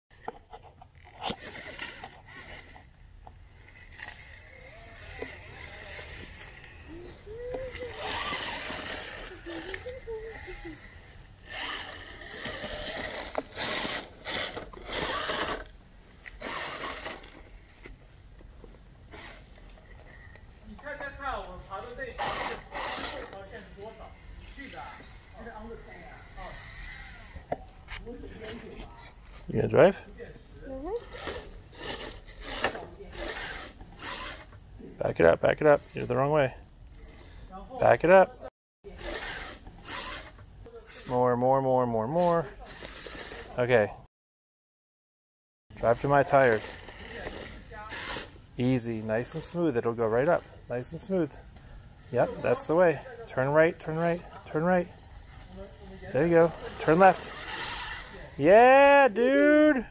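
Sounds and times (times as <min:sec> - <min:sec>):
tires scraping on stone: 0:00.2 - 0:30.0, 0:42.2 - 0:43.9, 0:45.9 - 0:58.6
high electric motor whine: 0:01.0 - 0:28.2, 0:45.8 - 0:58.6
quiet voices: 0:04.6 - 0:13.0.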